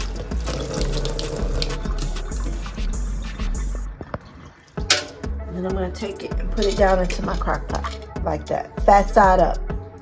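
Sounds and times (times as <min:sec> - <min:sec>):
faucet water running into sink: 0:00.0 - 0:03.0.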